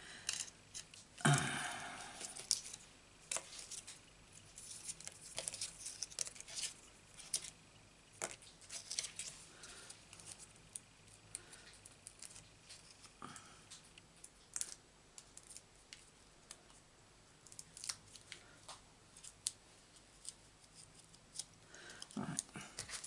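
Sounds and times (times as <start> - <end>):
paper rustling: 2.2 - 7.6, 8.2 - 10.5.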